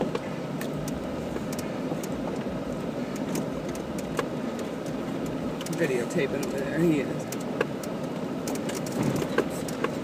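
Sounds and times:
rocks clicking and knocking: 0.0s - 10.0s
vehicle engine and tyres rumbling: 0.0s - 10.0s.

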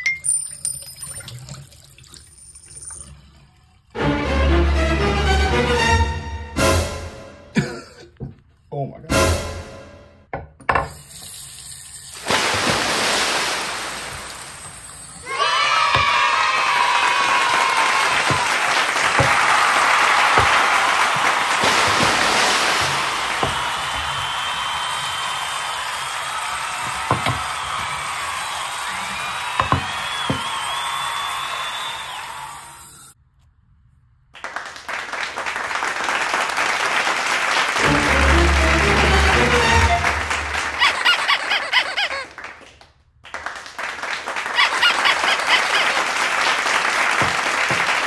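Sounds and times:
tap water running into sink: 0.6s - 3.0s, 10.7s - 15.3s, 21.6s - 24.2s, 26.8s - 28.1s.

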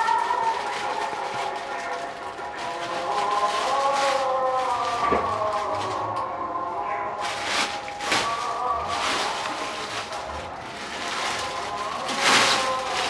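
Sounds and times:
background music gliding melody: 0.0s - 13.0s
brief rustles: 7.2s - 13.0s.

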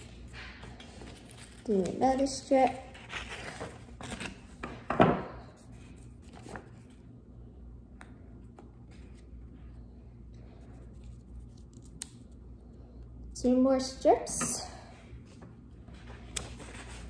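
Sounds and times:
faint paper handling: 5.4s - 7.2s.

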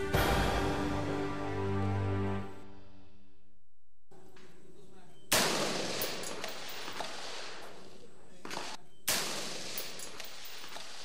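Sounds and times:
sharp gunshot: 5.3s - 7.6s, 8.5s - 11.0s.

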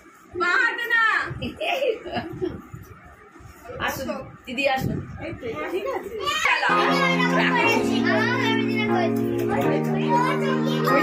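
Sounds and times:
excited children's voices: 5.6s - 11.0s
music with long held chords: 6.7s - 11.0s.

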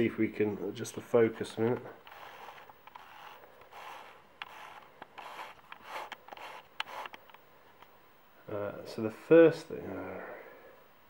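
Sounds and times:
plastic frame rubbing and scraping: 2.0s - 7.2s.

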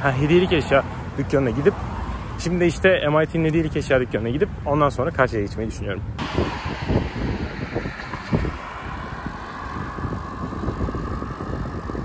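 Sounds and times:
road traffic noise: 0.0s - 12.0s
wind rumbling on microphone: 6.1s - 12.0s.

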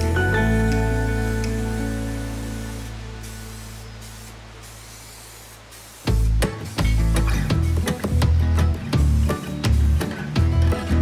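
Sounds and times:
guitar music: 0.0s - 3.6s, 6.1s - 11.0s
aerosol spray can hissing: 1.0s - 8.2s.

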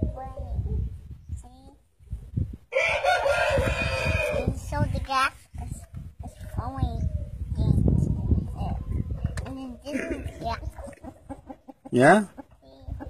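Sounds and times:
rooster crowing: 2.7s - 4.5s.

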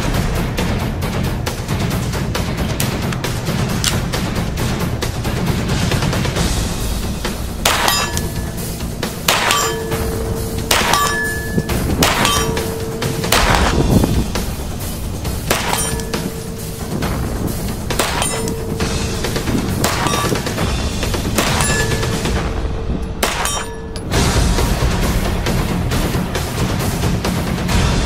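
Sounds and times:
pistol shots: 7.6s - 13.9s, 15.5s - 16.8s, 17.9s - 20.7s, 21.3s - 22.3s, 23.2s - 24.0s
steel target ringing: 7.6s - 24.4s.

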